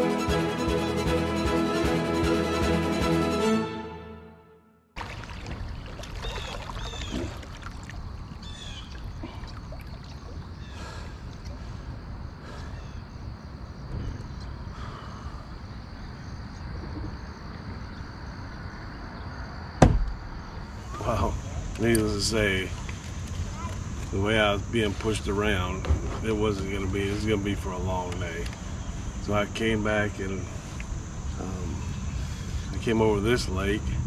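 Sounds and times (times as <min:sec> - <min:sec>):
background music: 0:00.0 - 0:04.8
water trickling along kayak hull: 0:05.0 - 0:11.8, 0:22.6 - 0:24.0
birds chirping: 0:05.4 - 0:07.5, 0:08.3 - 0:16.7
sharp knock: 0:19.8 - 0:20.2.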